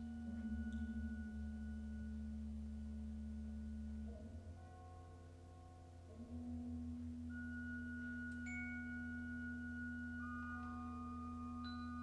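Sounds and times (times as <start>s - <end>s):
bell-like tuned percussion: 0.0s - 12.0s.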